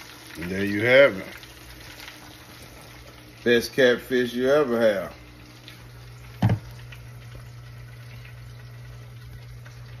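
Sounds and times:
pans sizzling and bubbling: 0.0s - 10.0s
low steady hum: 1.3s - 10.0s
sharp thump: 6.4s - 6.6s.

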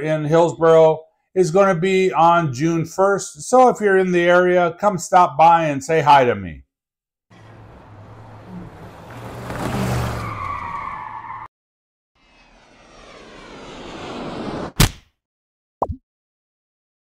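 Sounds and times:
vehicle passing by: 7.3s - 10.7s
rising whoosh: 12.2s - 14.8s.

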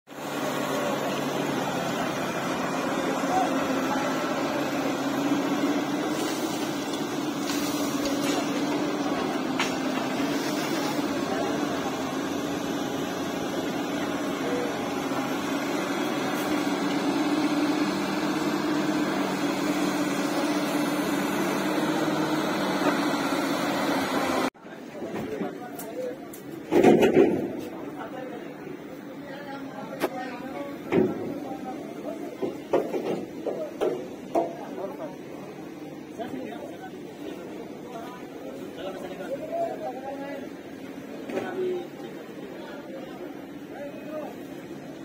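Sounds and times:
machine engine hum: 0.1s - 24.5s
workers talking indistinctly: 0.1s - 45.0s.

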